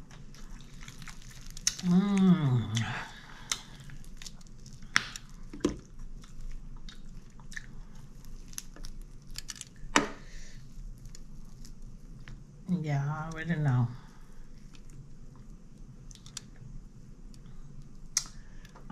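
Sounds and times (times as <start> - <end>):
crisp skin crackling: 0.0 - 9.9, 10.5 - 12.5
chewing: 0.1 - 9.5
fried chicken being torn: 0.6 - 2.3.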